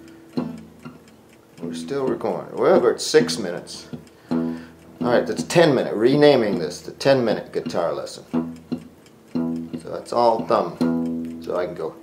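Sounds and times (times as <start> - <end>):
faint mechanical timer ticking: 0.0 - 12.0.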